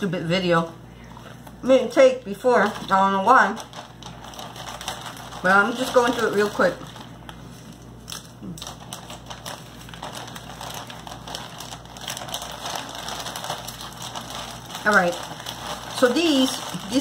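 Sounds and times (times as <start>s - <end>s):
snack packaging crinkling: 2.4s - 17.0s.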